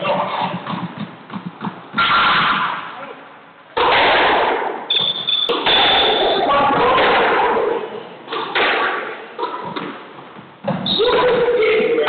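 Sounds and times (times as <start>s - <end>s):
squash ball cracks: 8.3s - 10.0s.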